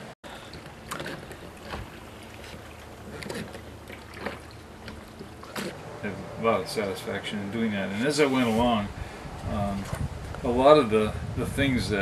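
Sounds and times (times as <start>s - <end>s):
oars splashing in water: 0.2s - 6.5s
faint wash of water: 0.2s - 7.1s.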